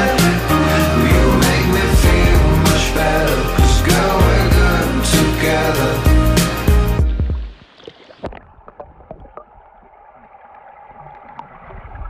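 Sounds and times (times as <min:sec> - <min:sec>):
background music: 0:00.0 - 0:07.6
bubbles clicking and popping: 0:07.5 - 0:12.0.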